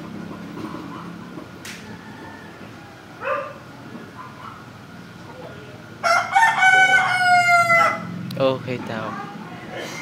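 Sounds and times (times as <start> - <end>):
rooster crowing: 1.8 - 3.4, 6.0 - 8.2.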